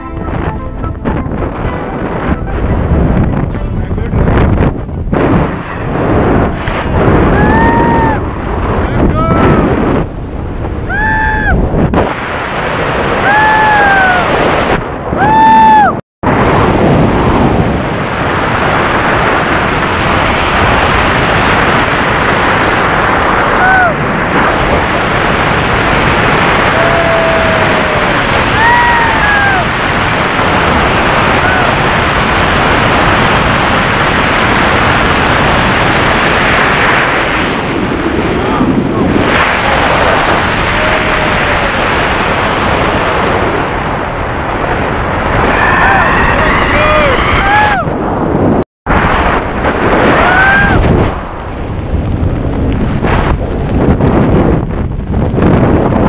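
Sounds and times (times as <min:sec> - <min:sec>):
wind rushing over microphone: 0:00.0 - 0:56.0.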